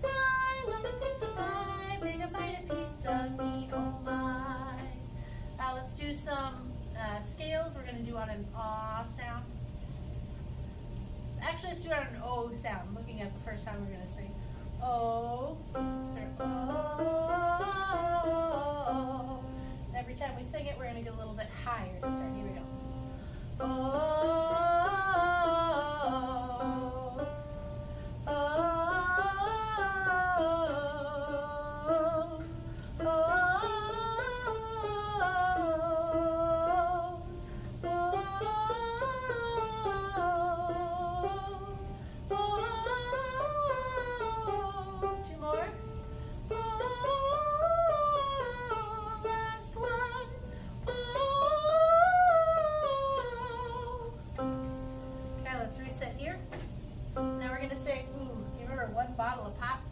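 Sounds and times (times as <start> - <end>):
woman singing vocal warm-up: 0.0 - 9.5, 11.4 - 56.4, 57.2 - 59.9.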